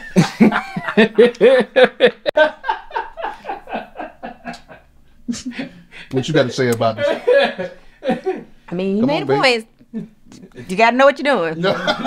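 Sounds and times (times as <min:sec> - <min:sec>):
person laughing: 0:00.0 - 0:06.3.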